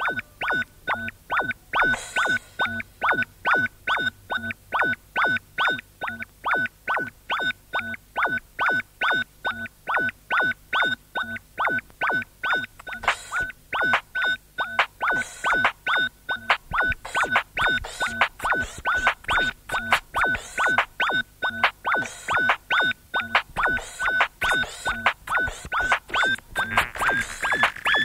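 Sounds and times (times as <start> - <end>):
synthesizer riff of short notes: 0.0 - 4.1, 14.7 - 28.0.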